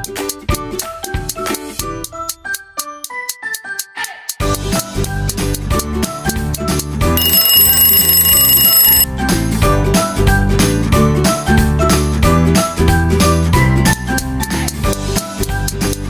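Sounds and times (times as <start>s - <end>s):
alarm clock ringing: 7.2s - 9.1s.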